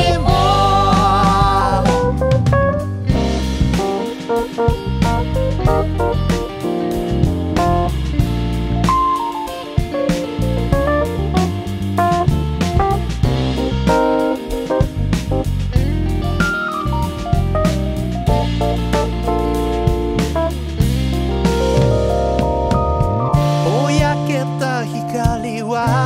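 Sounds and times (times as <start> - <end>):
bass guitar: 0.0 - 26.0
drum kit: 0.0 - 26.0
electric guitar melody: 0.0 - 26.0.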